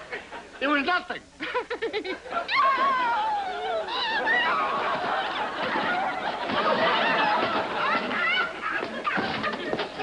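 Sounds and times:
studio audience laughing and hooting: 0:01.6 - 0:10.0.

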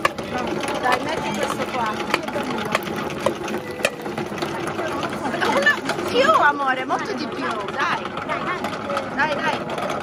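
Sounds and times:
electric food machine running: 0:00.0 - 0:10.0.

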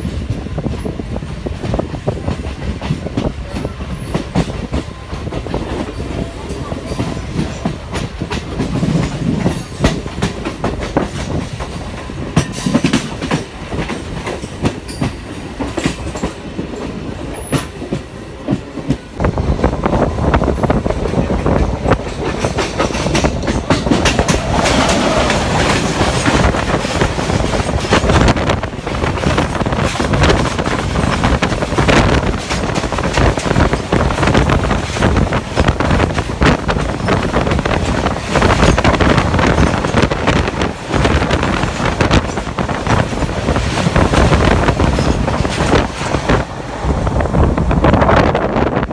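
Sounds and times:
train wheels clattering over rail joints: 0:00.0 - 0:46.5
freight train rushing past: 0:00.0 - 0:48.9.

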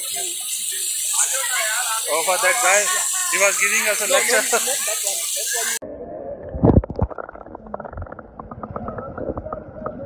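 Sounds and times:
underwater churning and bubbling: 0:05.9 - 0:10.0.

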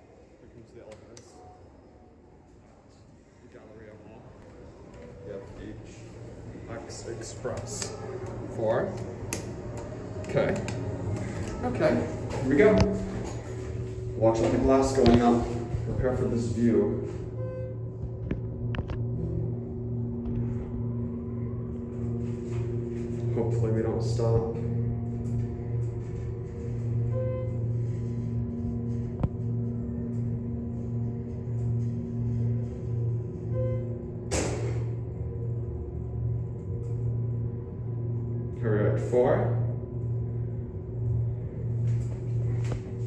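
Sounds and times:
elevator hum and rumble: 0:00.0 - 0:43.0.

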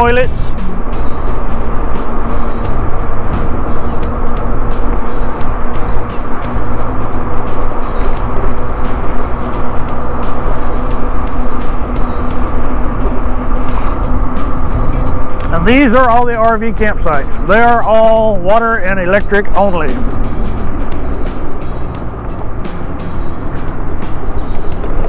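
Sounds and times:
steady hum: 0:00.0 - 0:25.0
wind rushing over microphone: 0:00.0 - 0:25.0.

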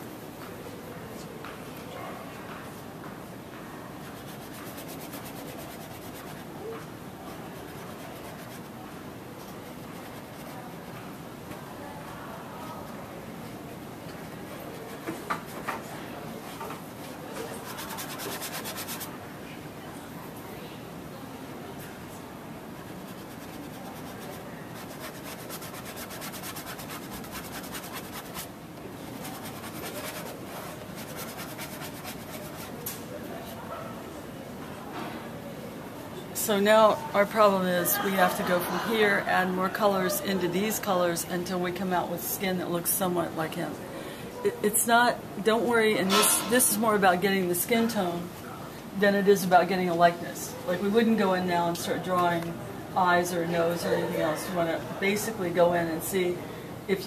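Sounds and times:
bristle brush scrubbing canvas: 0:04.0 - 0:10.9, 0:17.4 - 0:19.1, 0:22.8 - 0:32.8.

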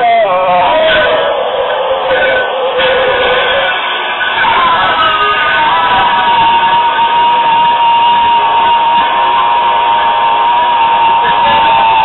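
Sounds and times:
distorted noise-punk band: 0:00.0 - 0:12.0
high held tone: 0:00.0 - 0:12.0.

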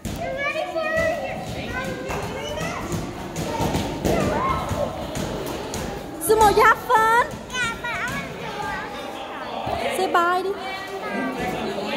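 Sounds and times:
adults chattering: 0:00.0 - 0:11.9
children playing and talking: 0:00.0 - 0:11.9.

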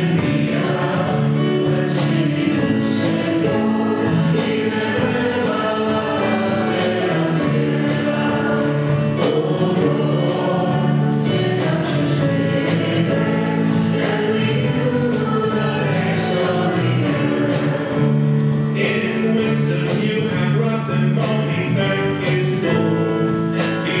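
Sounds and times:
choir singing a hymn: 0:00.0 - 0:24.0.

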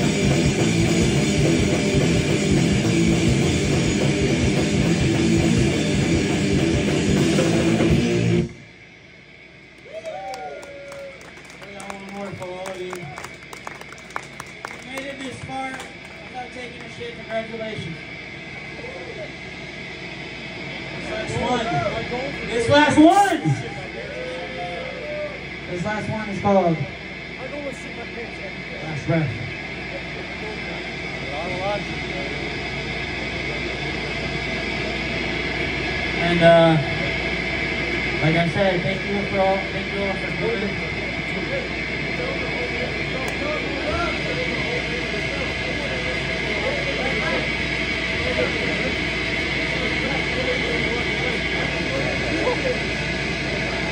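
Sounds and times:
hiss and hum: 0:00.0 - 0:53.9
audience clapping: 0:09.8 - 0:17.0
people's voices: 0:36.1 - 0:53.9.

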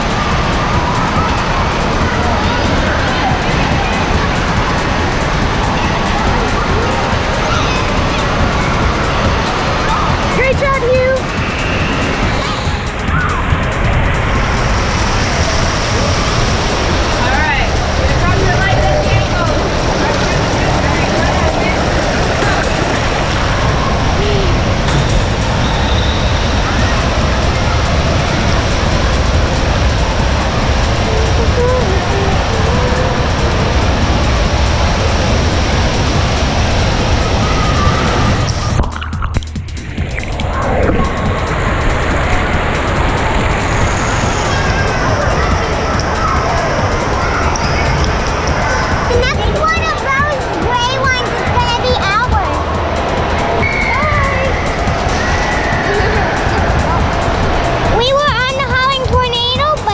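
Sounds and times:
children shouting and squealing: 0:00.0 - 0:38.8, 0:39.8 - 0:59.9
echoing indoor water park din: 0:00.0 - 0:59.9
splashing and running water: 0:00.0 - 0:59.9.

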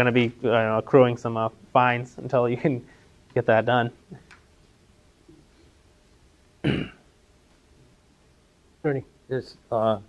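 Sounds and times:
man clearing his throat: 0:06.6 - 0:07.1.

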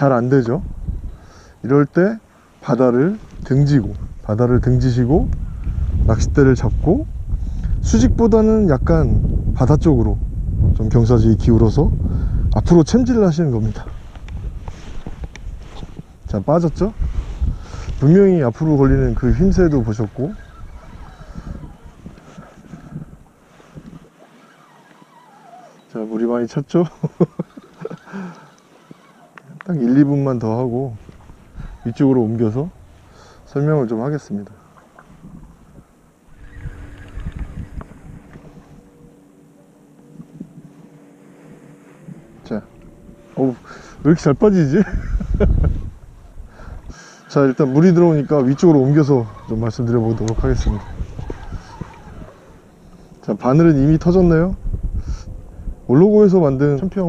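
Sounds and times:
wind buffeting microphone: 0:00.0 - 0:25.8, 0:29.0 - 0:57.0
faint steady hum: 0:00.0 - 0:57.0
faint clicks: 0:36.4 - 0:38.6.

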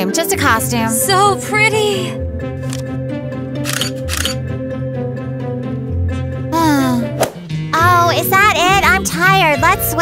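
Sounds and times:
background music: 0:00.0 - 0:10.0
camera shutter clicks: 0:03.6 - 0:04.4.

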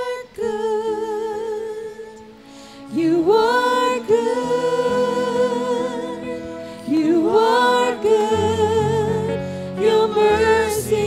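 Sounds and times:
singer holding notes with vibrato: 0:00.0 - 0:11.0
held accompaniment chords: 0:01.6 - 0:11.0.

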